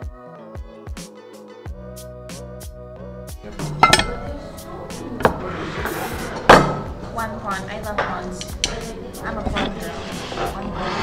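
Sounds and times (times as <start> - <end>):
background music with beat: 0.0 - 9.2
plates and cutlery clinking: 3.4 - 11.0.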